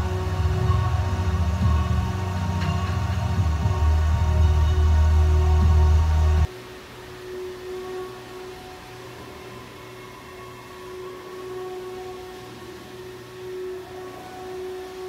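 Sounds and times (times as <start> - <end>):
faint hiss: 0.0 - 15.0
steady drone tone: 0.0 - 15.0.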